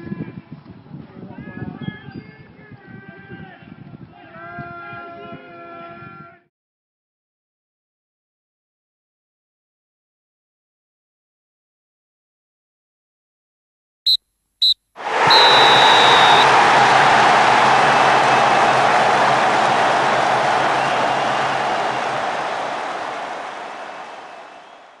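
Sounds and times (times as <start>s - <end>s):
referee's whistle blasts: 14.6s - 17.0s, 20.5s - 25.0s
loud crowd roar: 15.0s - 25.0s.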